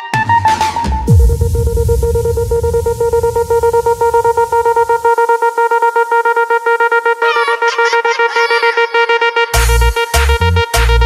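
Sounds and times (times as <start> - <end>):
low synth bass: 0.5 - 7.2, 9.6 - 10.4
pulsing synth tone: 1.0 - 10.0
wavering higher synth lines: 1.1 - 9.9.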